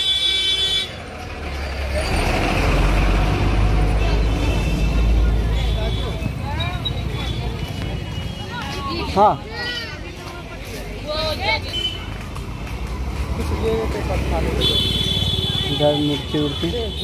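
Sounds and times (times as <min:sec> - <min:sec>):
vehicle horn: 0:00.0 - 0:01.0, 0:04.0 - 0:06.2, 0:14.6 - 0:17.0
voices: 0:00.9 - 0:17.0
motor vehicle passing: 0:01.1 - 0:09.5, 0:10.1 - 0:16.6.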